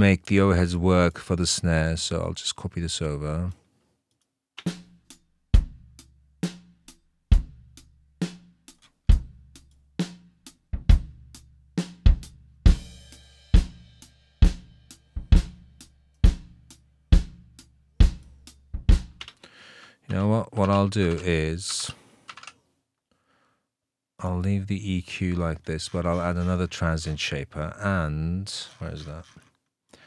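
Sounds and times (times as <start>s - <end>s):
snare and cymbals: 4.6s - 19.2s.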